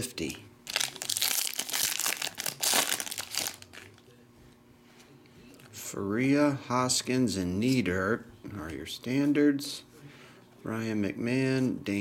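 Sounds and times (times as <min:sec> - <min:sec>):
foil wrapper crinkling and tearing: 0:00.6 - 0:04.0.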